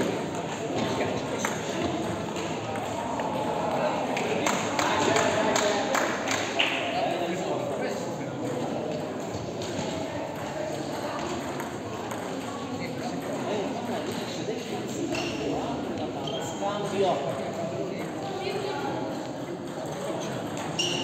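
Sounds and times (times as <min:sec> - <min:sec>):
many voices talking: 0:00.0 - 0:21.0.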